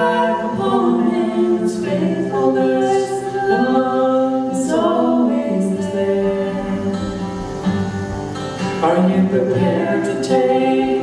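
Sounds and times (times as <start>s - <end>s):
man and woman singing in harmony: 0.0s - 7.6s, 8.8s - 11.0s.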